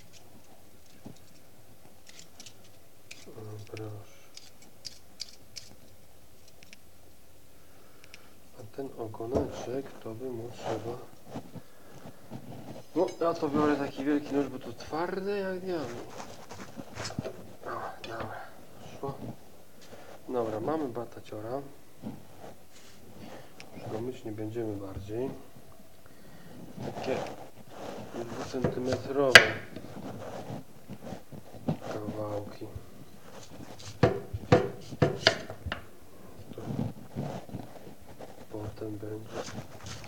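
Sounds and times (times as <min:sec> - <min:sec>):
soft handling sounds: 0:00.0 - 0:06.9, 0:08.0 - 0:40.0
knife cutting sweet potato: 0:02.0 - 0:05.8, 0:28.2 - 0:29.8, 0:33.4 - 0:35.6
sharp knock: 0:29.4 - 0:29.7
knife cutting on wooden board: 0:33.4 - 0:35.6.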